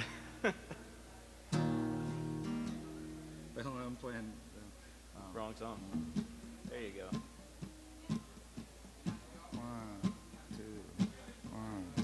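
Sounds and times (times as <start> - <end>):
acoustic guitar playing: 0.0 - 12.0
electric guitar plucked notes: 1.6 - 3.6.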